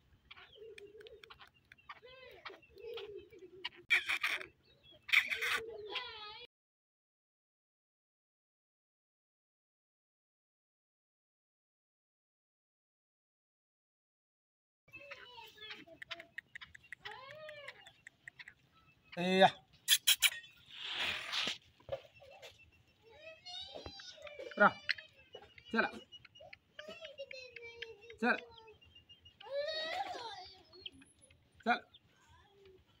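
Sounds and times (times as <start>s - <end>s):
faint clicks: 0.6s - 2.0s, 15.7s - 18.7s
faint voices talking: 14.9s - 20.5s, 21.9s - 33.0s.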